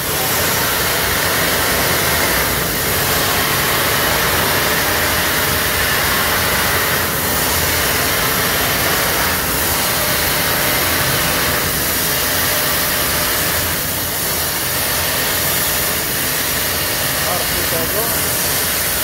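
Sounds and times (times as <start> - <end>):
plasma cutter hissing: 0.0 - 19.0.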